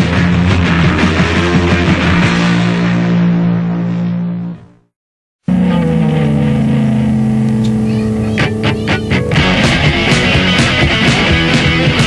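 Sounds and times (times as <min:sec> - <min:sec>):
distorted electric guitar chord: 0:05.4 - 0:12.0
sharp guitar hits: 0:05.5 - 0:12.0.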